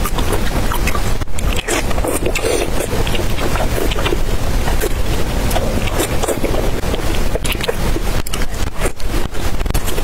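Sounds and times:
chewing and wet mouth sounds: 0.0 - 10.0
mouth smacks and clicks: 0.0 - 10.0
steady low rumble: 0.0 - 10.0.

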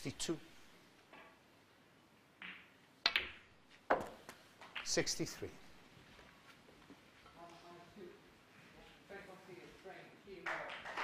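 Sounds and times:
snooker balls clicking: 2.3 - 5.1, 10.5 - 11.0
cue tip striking ball: 2.4 - 4.9.

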